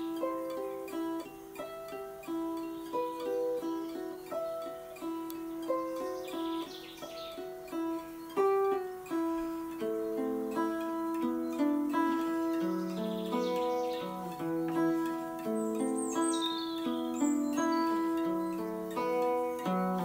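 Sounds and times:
guitar picking a riff: 0:00.0 - 0:20.0.

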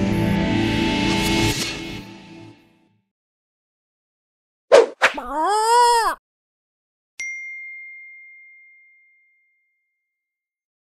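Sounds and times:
bell-like ding: 0:07.2 - 0:09.9.

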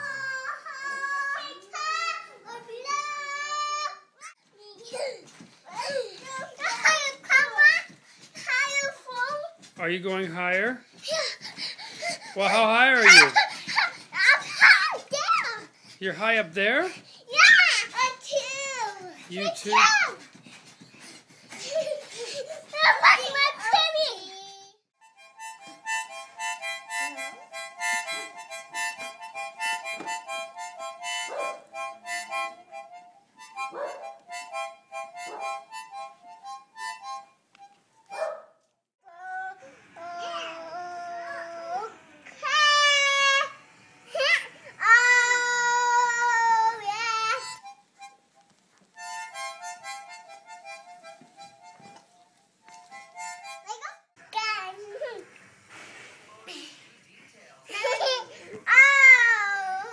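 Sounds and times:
toddler shouting: 0:00.0 - 0:09.6, 0:12.5 - 0:15.7, 0:17.3 - 0:20.2, 0:22.7 - 0:24.5, 0:39.1 - 0:47.5, 0:57.8 - 0:59.9
toy harmonica puffs: 0:25.0 - 0:37.8, 0:48.9 - 0:53.8.

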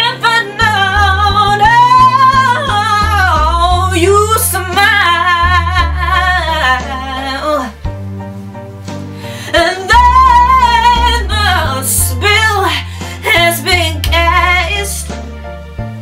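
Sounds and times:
woman singing soul ballad: 0:00.0 - 0:07.8, 0:09.4 - 0:15.3
instrumental backing with bass: 0:00.0 - 0:16.0.

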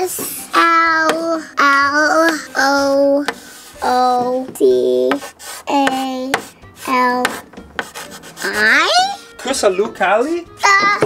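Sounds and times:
child singing held notes: 0:00.0 - 0:07.4, 0:10.6 - 0:11.0
chalk scraping on chalkboard: 0:02.7 - 0:09.6.

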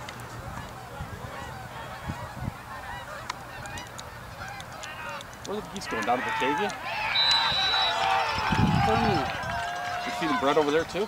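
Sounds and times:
geese honking: 0:00.4 - 0:11.0.

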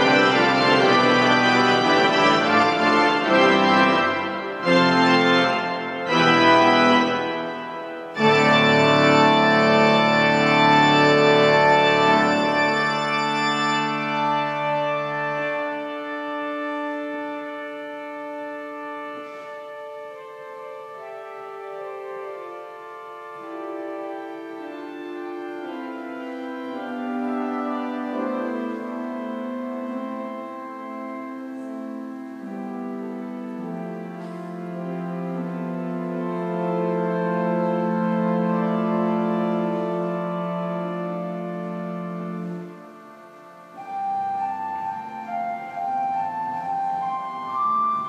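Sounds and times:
pipe organ playing sustained chords: 0:00.0 - 0:48.0.

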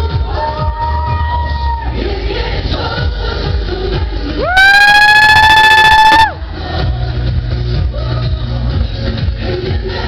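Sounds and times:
club dance music: 0:00.0 - 0:10.0
person whooping: 0:04.4 - 0:06.4.

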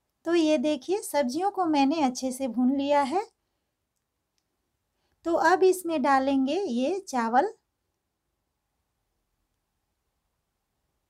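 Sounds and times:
woman's voice: 0:00.2 - 0:03.4, 0:05.3 - 0:07.7.

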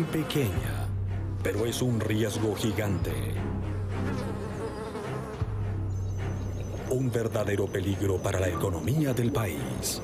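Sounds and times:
fly buzzing: 0:03.4 - 0:06.8.

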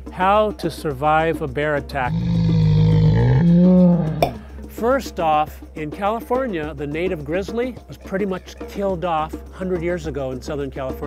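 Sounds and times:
bear roaring: 0:02.1 - 0:04.4.

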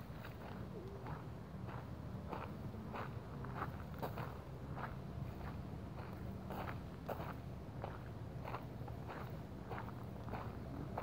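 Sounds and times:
footsteps on outdoor path: 0:00.0 - 0:11.0.

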